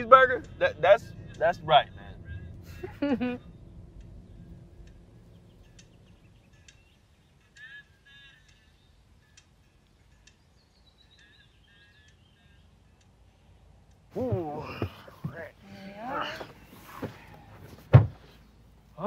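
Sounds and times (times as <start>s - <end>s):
bird chirps and calls: 10.2s - 12.8s.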